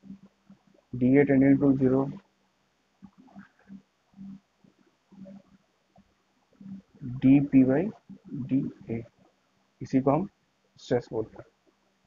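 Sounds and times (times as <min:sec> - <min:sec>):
man murmuring: 0:07.0 - 0:09.0.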